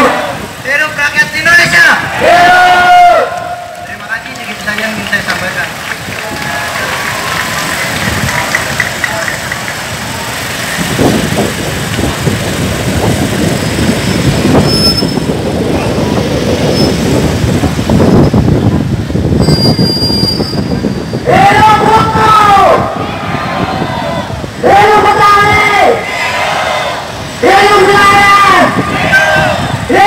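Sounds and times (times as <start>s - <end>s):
large crowd rumble: 0.0s - 30.0s.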